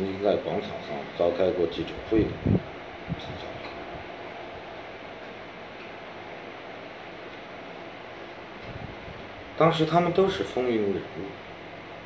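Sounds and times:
steady room tone hiss: 0.0 - 12.0.

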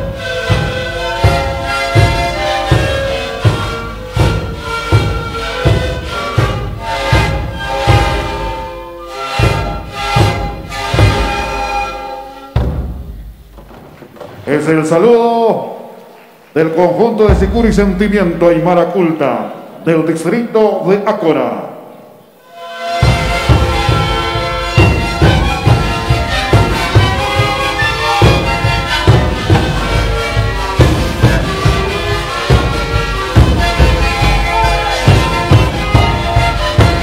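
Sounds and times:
panpipes playing chords: 0.0 - 13.5, 22.2 - 37.0
large drum strokes: 0.0 - 15.4, 17.2 - 18.7, 22.5 - 37.0.

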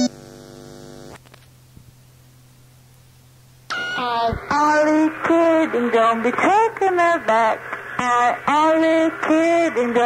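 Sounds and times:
sustained electronic tone: 0.0 - 0.9
low mains hum: 0.0 - 10.0.

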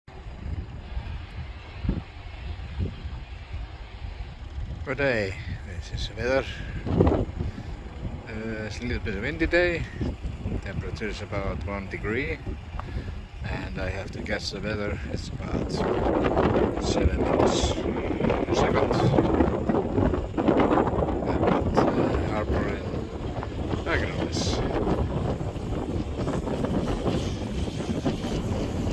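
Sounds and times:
wind buffeting microphone: 0.1 - 28.9.

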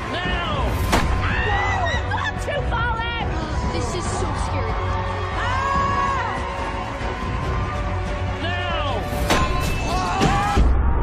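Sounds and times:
music playing: 0.0 - 10.7
sharp thud: 0.8 - 1.3.

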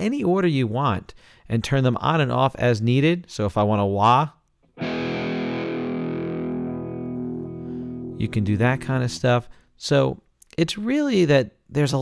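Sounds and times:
distorted electric guitar chord: 4.8 - 9.4.

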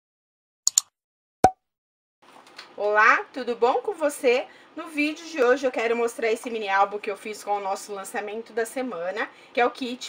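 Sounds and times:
high clicks: 0.7 - 0.9.

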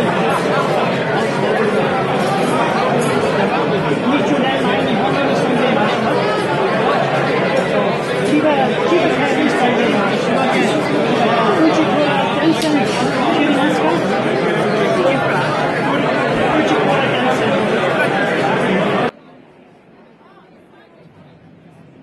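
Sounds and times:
overlapping conversation chatter: 0.0 - 22.0.

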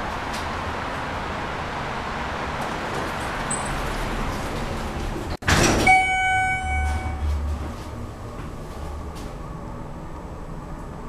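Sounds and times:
open-air background noise: 0.0 - 11.0
elevator doors closing thud: 2.5 - 9.4
held electronic tone: 5.9 - 7.4.

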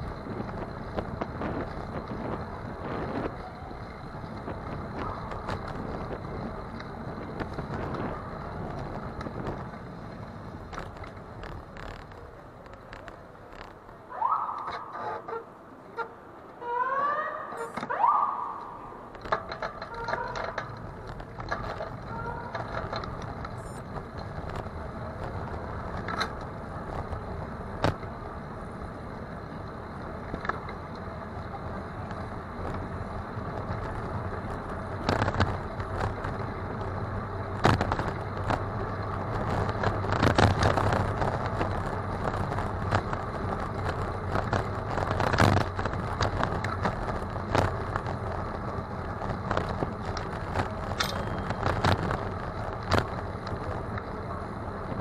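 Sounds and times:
bicycle rattles and knocks: 0.0 - 18.0, 18.6 - 55.0
bicycle tyre and road noise: 0.0 - 55.0.

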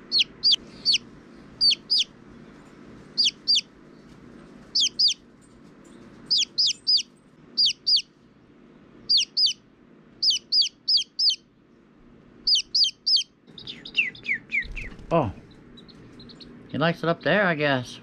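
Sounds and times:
chick peeping: 0.0 - 2.1, 3.2 - 3.7, 4.7 - 5.2, 6.3 - 8.1, 9.1 - 9.6, 10.2 - 11.4, 12.5 - 15.2, 15.8 - 17.4.

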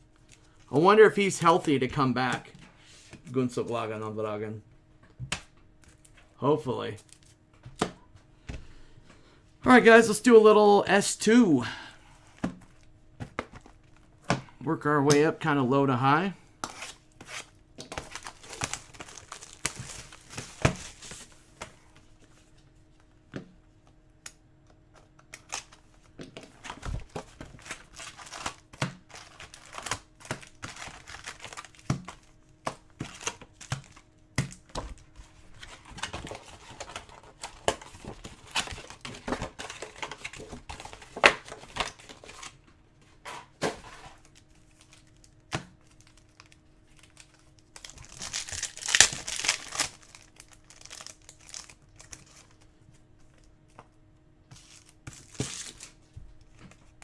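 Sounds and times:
wrappers rustling and crinkling: 16.8 - 21.5, 44.2 - 52.7.

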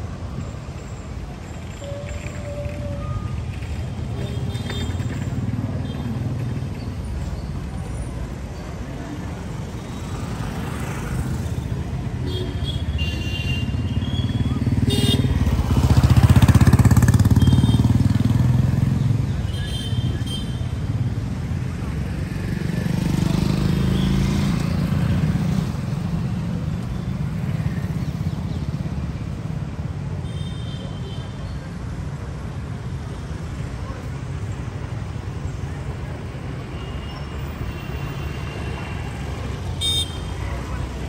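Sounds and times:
motorcycles and scooters passing: 2.2 - 30.0.

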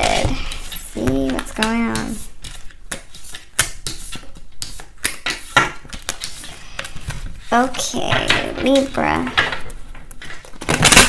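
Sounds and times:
cards shuffling: 0.0 - 9.0.

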